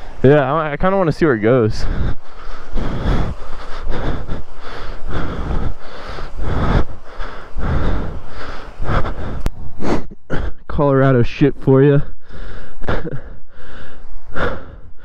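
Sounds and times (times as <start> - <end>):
heavy quick breathing: 1.5 - 10.6, 12.0 - 15.0.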